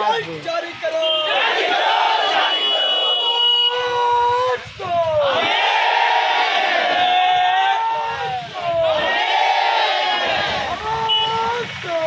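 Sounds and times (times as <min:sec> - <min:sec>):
crowd chanting in unison: 0:01.2 - 0:03.2, 0:05.2 - 0:07.5, 0:08.1 - 0:10.9.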